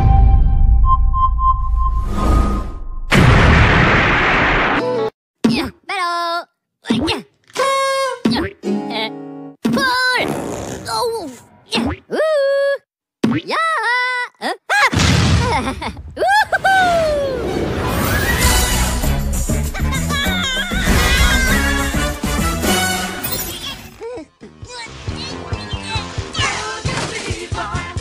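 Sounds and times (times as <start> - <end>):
high-pitched cartoon voice cries: 5.4 - 9.1, 12.1 - 12.8, 13.5 - 17.4, 19.9 - 21.7.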